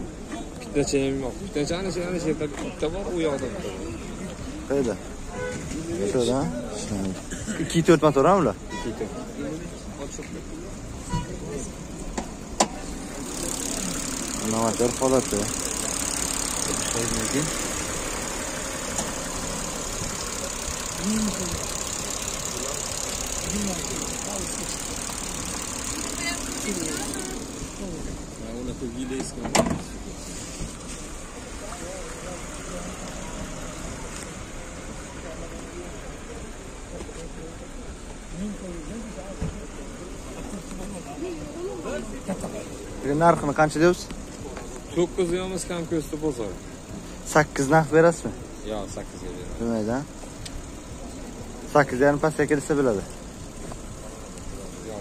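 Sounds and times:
murmur of voices: 0.0s - 55.0s
steady high hiss: 7.7s - 55.0s
car bonnet slamming shut: 29.2s - 30.0s.

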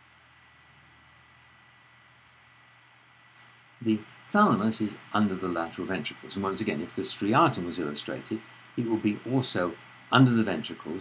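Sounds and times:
high whine: 0.0s - 11.0s
recording hiss: 0.0s - 11.0s.

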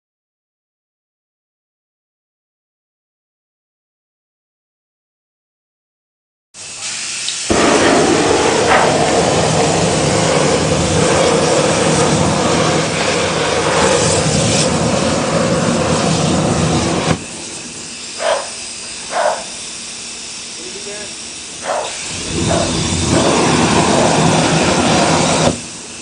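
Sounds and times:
flamethrower rushing hiss: 6.6s - 26.0s
flamethrower short bursts: 6.6s - 26.0s.

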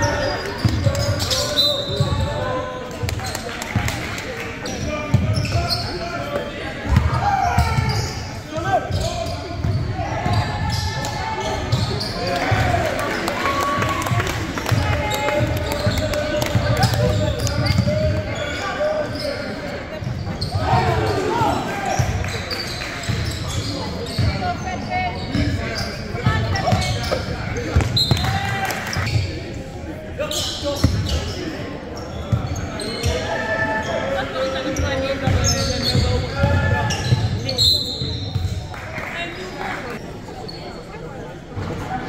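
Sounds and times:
sneaker squeaks: 0.0s - 3.9s, 4.6s - 12.6s, 15.3s - 29.4s, 30.2s - 38.7s, 40.0s - 41.0s
players' voices: 0.0s - 42.0s.

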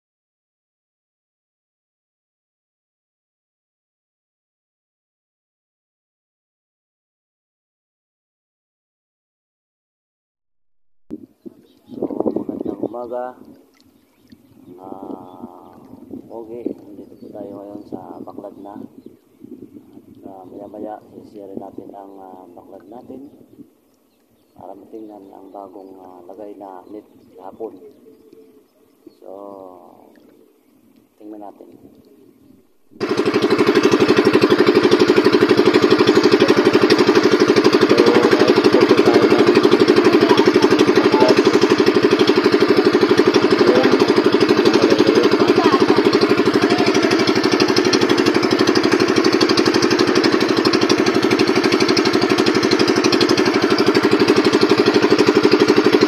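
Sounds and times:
boat engine running: 11.1s - 56.0s
man speaking: 24.6s - 27.9s, 37.8s - 41.8s, 43.4s - 46.1s.

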